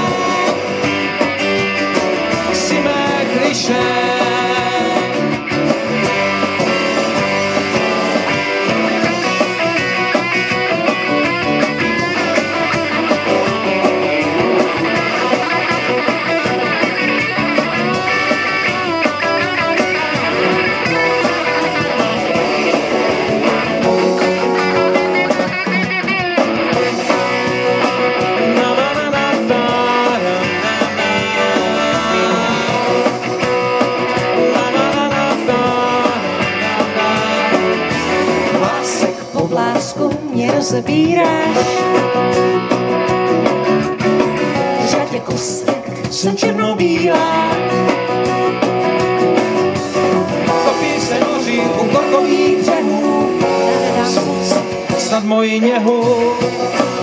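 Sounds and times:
live rock band playing: 0.0 - 57.0.

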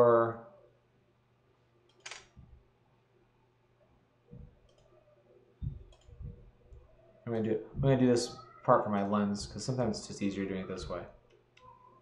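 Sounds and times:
computer mouse clicking: 1.9 - 2.3, 4.6 - 4.9, 5.7 - 6.8.

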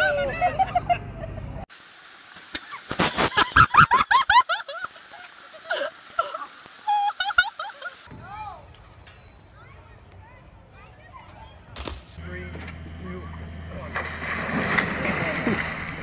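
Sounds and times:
person laughing hard: 0.0 - 1.6, 3.1 - 8.1
flowing creek water: 1.7 - 8.1.

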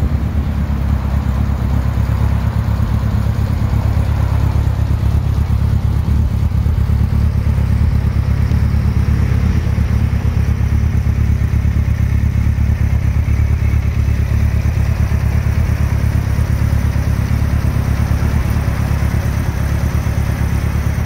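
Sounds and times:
motorcycle engine idling: 0.0 - 21.0.

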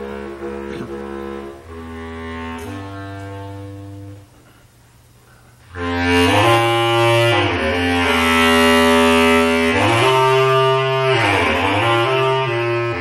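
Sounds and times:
bass clarinet improvisation: 0.0 - 4.7, 5.6 - 13.0.

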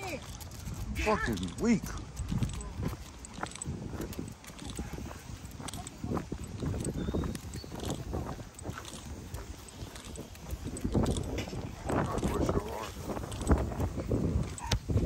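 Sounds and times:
footsteps of person and dog: 0.0 - 15.0.

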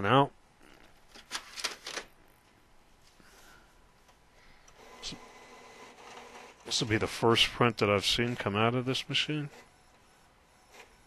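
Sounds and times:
printer running quietly: 4.0 - 11.0.

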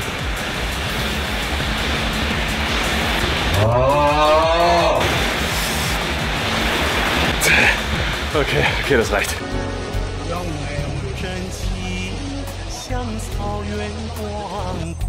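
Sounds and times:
music with low beat: 0.0 - 15.0
man yelling: 3.6 - 5.2.

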